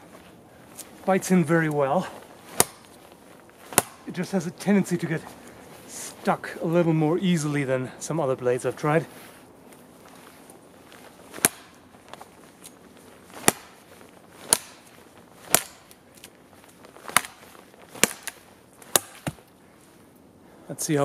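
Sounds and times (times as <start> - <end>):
blade chopping a sapling: 1.7 - 3.0, 3.6 - 4.3, 11.0 - 19.5.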